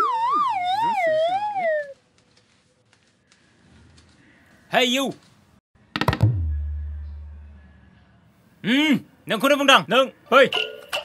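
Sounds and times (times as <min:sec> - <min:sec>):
wavering whistle sliding down: 0:00.0 - 0:02.0.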